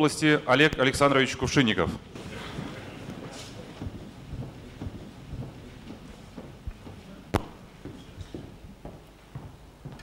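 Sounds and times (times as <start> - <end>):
low muffled thuds: 3.6 - 7.9.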